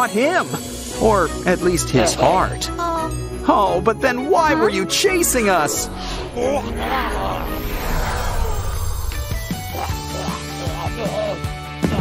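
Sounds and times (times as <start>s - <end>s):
background music: 0.0s - 12.0s
monster growling roar: 5.8s - 10.2s.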